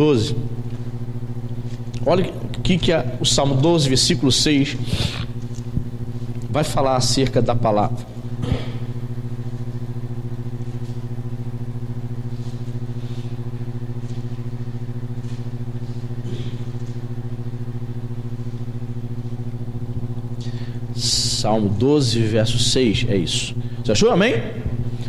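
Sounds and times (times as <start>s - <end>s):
electrical mains hum: 0.0s - 25.0s.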